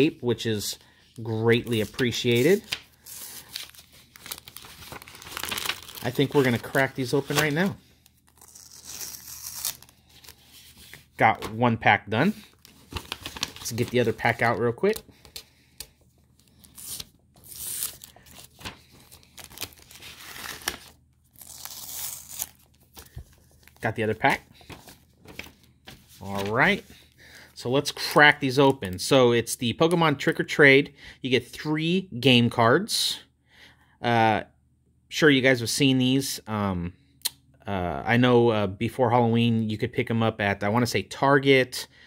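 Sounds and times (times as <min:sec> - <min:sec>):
foil wrappers crinkling: 0:01.7 - 0:07.7, 0:12.5 - 0:15.5, 0:16.4 - 0:24.0
tape being peeled: 0:02.3 - 0:11.0, 0:16.6 - 0:23.8.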